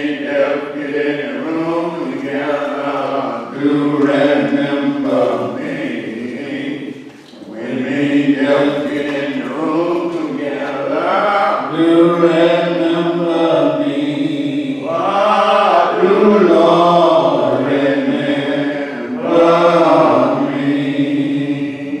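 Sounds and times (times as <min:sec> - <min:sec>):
church singing a hymn: 0:00.0 - 0:22.0.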